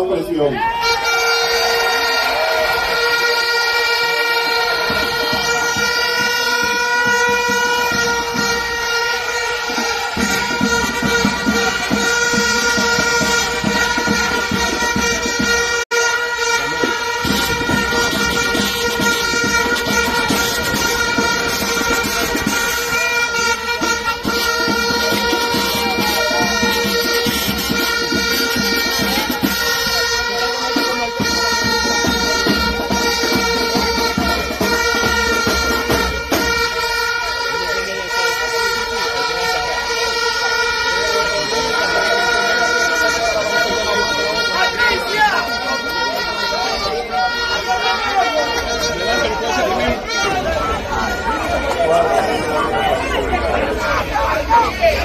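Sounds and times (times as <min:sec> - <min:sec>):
held horn-like tones: 0:00.0 - 0:55.0
noisy crowd: 0:00.0 - 0:55.0.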